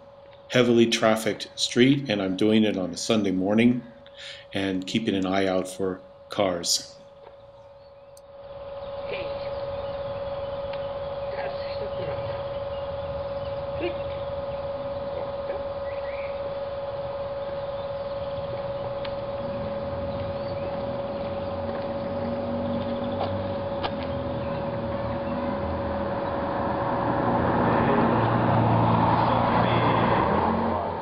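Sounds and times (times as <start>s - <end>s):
car passing by: 25.4s - 31.0s.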